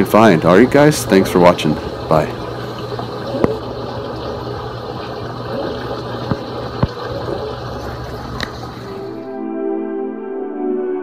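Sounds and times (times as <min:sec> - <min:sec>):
water rushing: 0:00.0 - 0:09.3
low pump hum: 0:00.0 - 0:09.4.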